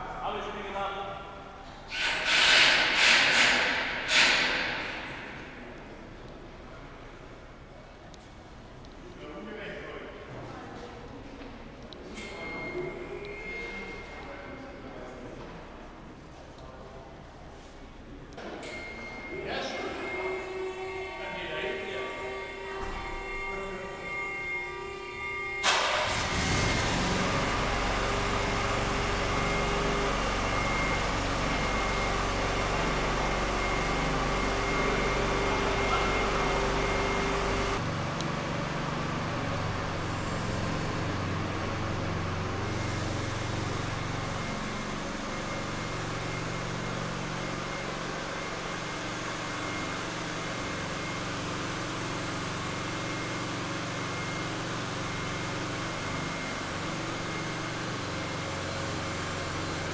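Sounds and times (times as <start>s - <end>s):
car engine running: 23.1s - 59.9s.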